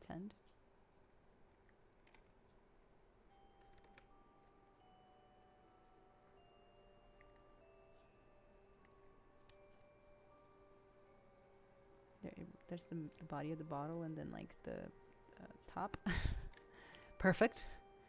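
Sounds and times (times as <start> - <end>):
soft background music: 0.0 - 18.0.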